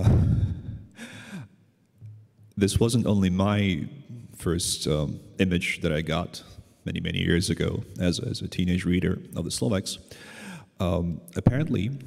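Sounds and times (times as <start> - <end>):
man sighing heavily: 0.0 - 1.5.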